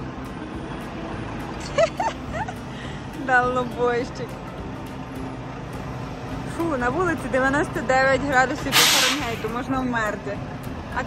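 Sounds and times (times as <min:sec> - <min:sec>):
truck diesel engine running: 0:00.0 - 0:11.0.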